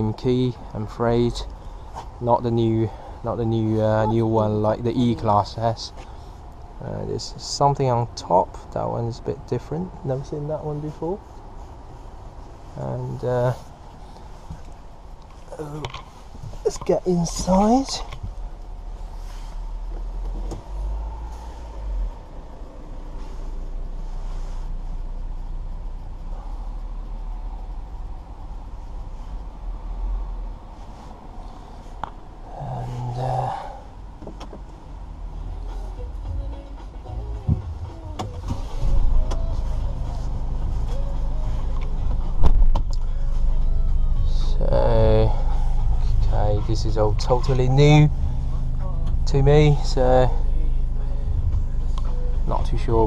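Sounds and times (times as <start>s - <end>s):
van engine hum: 0.0s - 53.0s.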